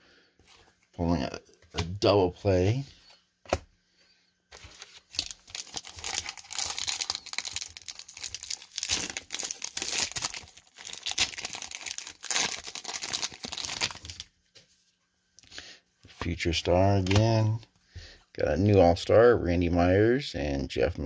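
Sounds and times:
wrapper tearing and crinkling: 4.7 - 14.3.

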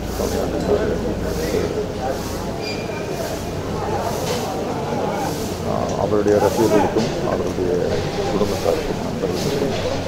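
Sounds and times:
man speaking: 5.6 - 10.0.

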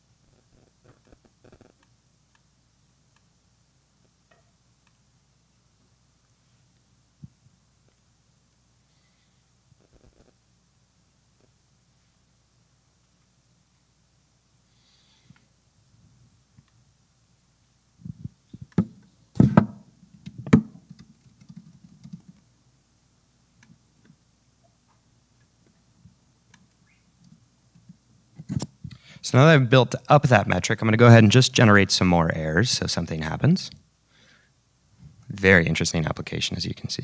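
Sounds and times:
room hum: 0.0 - 37.0
laptop keys typing clicks: 20.2 - 22.4.

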